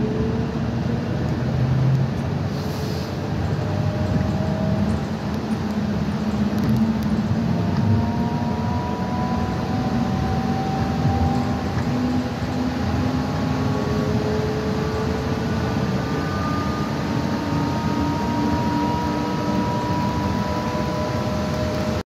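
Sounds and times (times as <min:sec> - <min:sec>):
bus engine and road rumble: 0:00.0 - 0:22.0
thin rising whine: 0:03.2 - 0:22.0.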